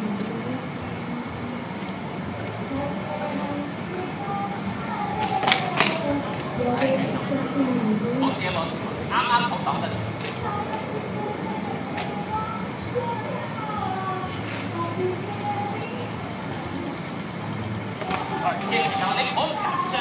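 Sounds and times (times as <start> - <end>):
background talk: 0.0 - 20.0
city noise rumble: 0.0 - 20.0.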